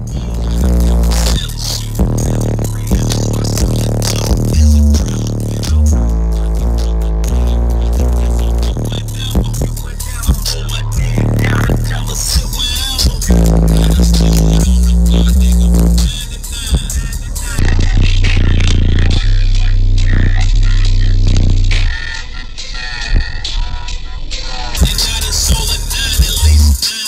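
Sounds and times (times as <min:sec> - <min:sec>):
deep held bass notes: 0:00.0 - 0:24.0, 0:24.8 - 0:26.8
loud bass-heavy music: 0:00.0 - 0:27.0.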